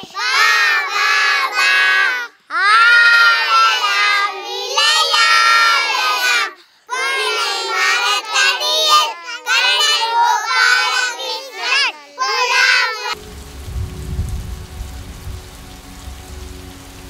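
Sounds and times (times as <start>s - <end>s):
children singing in unison: 0.0s - 13.2s.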